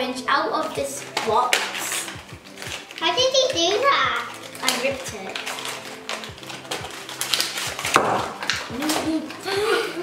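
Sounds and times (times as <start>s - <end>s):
cardboard and foil crackling: 0.5s - 9.6s
child vocal sound: 8.7s - 10.0s.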